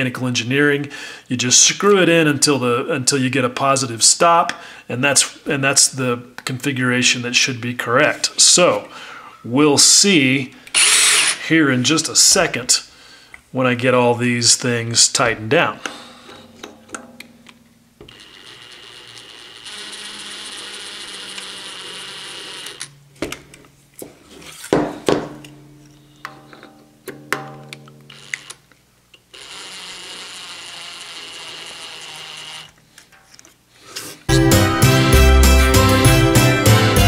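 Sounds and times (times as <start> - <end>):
cordless drill driving screws: 10.7 - 11.4, 18.1 - 22.9, 29.4 - 32.8
music: 34.3 - 37.0.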